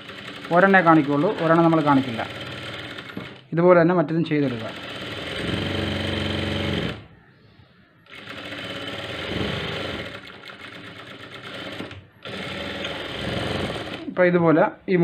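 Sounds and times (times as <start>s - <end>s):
sewing machine stitching: 0.0s - 3.4s, 4.4s - 7.0s, 8.1s - 14.1s.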